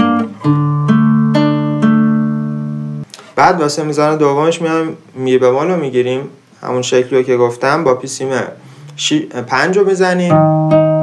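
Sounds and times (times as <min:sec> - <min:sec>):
fingerpicked classical guitar: 0:00.0 - 0:03.1, 0:08.6 - 0:11.0.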